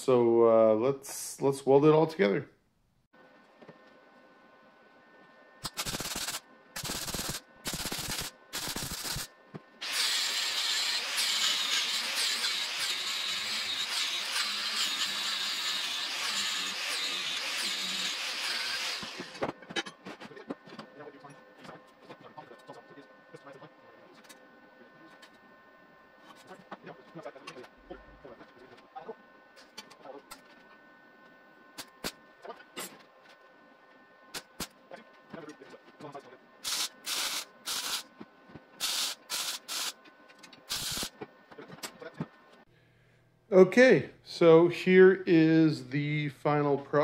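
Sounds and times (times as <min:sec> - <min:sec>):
welder crackling: 0:05.6 - 0:19.4, 0:36.6 - 0:38.1, 0:38.8 - 0:40.0, 0:40.6 - 0:41.2.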